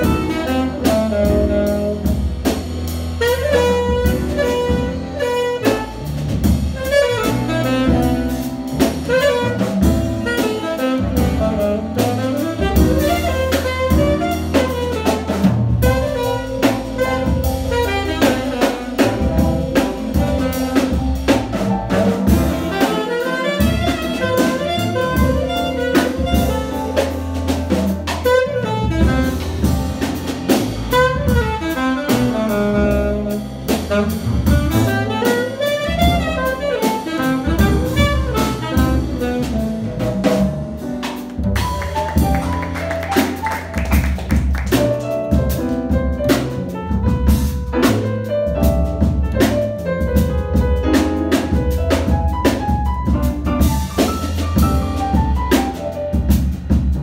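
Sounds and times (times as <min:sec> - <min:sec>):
double bass: 0:00.0 - 0:57.0
drum kit with cymbal strokes: 0:00.0 - 0:57.0
piano: 0:00.0 - 0:57.0.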